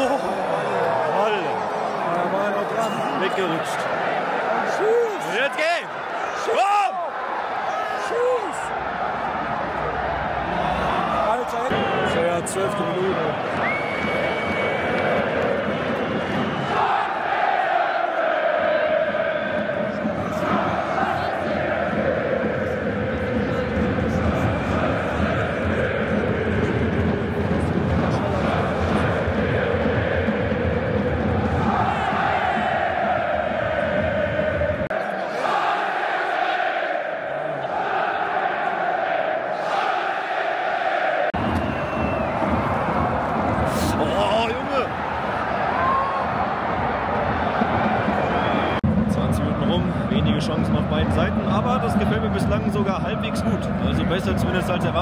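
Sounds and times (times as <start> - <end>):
general crowd noise: 0.0 - 55.0
crowd singing a chant: 14.9 - 42.0.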